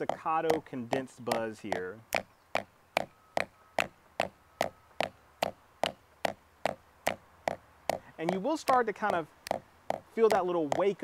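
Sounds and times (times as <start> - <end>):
drumstick buzz strokes on practice pad: 0.0 - 11.0.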